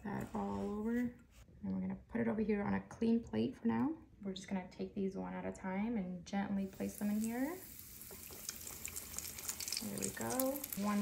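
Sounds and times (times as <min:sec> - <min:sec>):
chicken sizzling in frying oil: 0:06.7 - 0:11.0.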